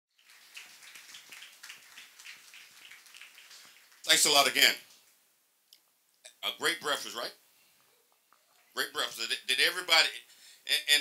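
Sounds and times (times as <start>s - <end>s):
low room noise: 0.1s - 11.0s.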